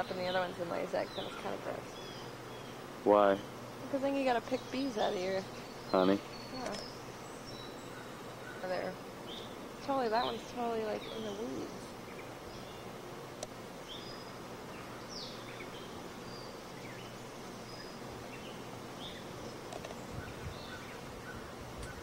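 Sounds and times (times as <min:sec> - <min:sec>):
bird chirps: 0:00.0 - 0:12.9, 0:13.8 - 0:22.0
honeybees humming: 0:00.0 - 0:22.0
steady hiss: 0:00.0 - 0:22.0.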